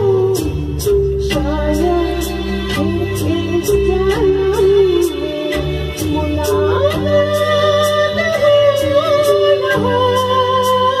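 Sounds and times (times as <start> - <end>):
backing music with steady beat: 0.0 - 11.0
woman singing into a microphone: 0.0 - 11.0.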